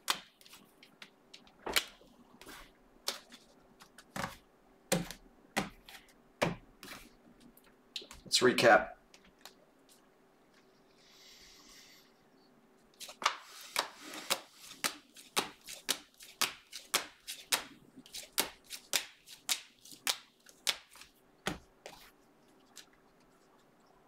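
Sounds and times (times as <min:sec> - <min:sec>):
trading cards flicked by hand: 0:00.0 - 0:07.0, 0:13.0 - 0:22.0.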